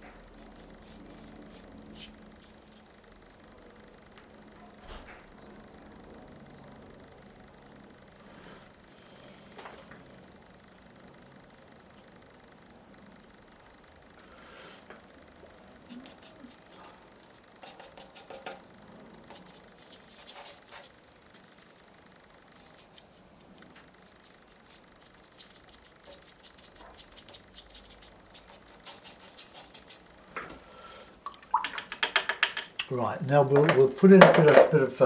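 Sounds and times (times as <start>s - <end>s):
brush scratching on paper: 0.4s - 2.9s, 15.8s - 18.6s, 19.2s - 21.9s, 24.1s - 30.1s
man speaking: 32.9s - 35.0s.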